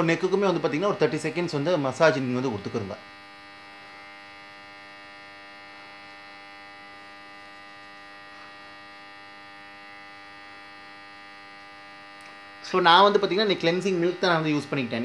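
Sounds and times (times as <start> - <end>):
electrical hum: 0.0 - 15.0.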